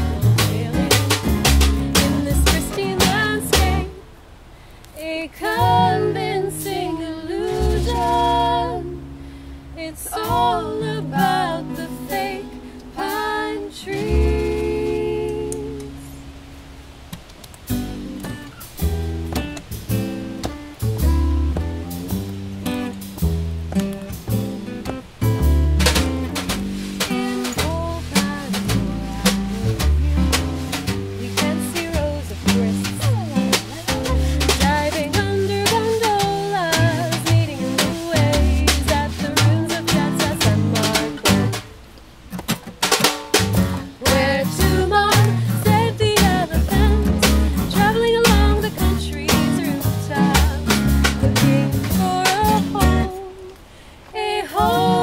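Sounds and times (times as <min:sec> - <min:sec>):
small drum kit: 0:00.0 - 0:04.0, 0:17.2 - 0:53.2
upright bass: 0:00.0 - 0:04.1, 0:05.4 - 0:53.6, 0:54.5 - 0:55.0
acoustic guitar: 0:00.0 - 0:55.0.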